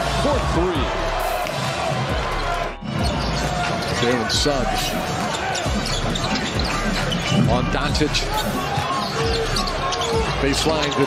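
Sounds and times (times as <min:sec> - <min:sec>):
arena crowd din: 0:00.0 - 0:11.0.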